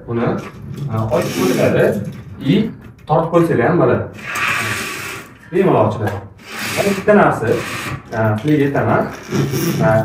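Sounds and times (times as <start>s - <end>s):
person speaking: 0.0s - 4.1s
curtain sliding along track: 0.6s - 2.0s, 4.2s - 5.3s.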